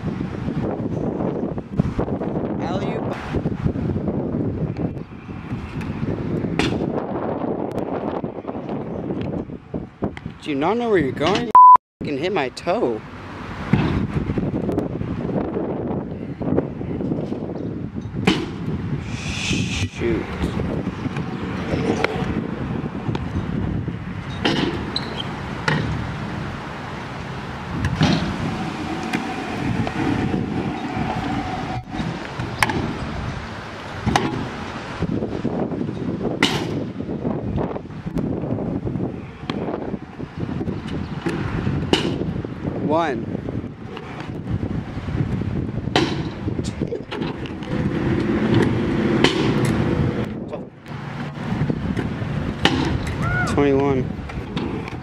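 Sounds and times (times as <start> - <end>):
wind on microphone: 0.0 - 11.5, 13.4 - 55.0
scooter wheels rolling on concrete: 20.3 - 35.0.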